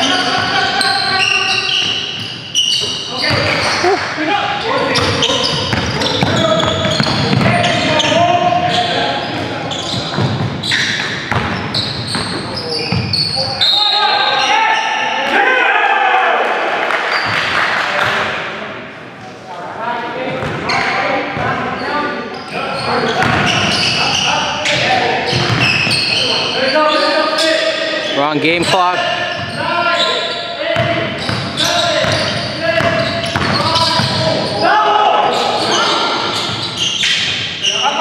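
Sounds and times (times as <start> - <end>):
players' voices echoing: 0.0 - 38.0
basketball bouncing: 5.0 - 7.9, 10.1 - 13.1, 23.2 - 23.8, 25.3 - 25.9, 30.8 - 34.2.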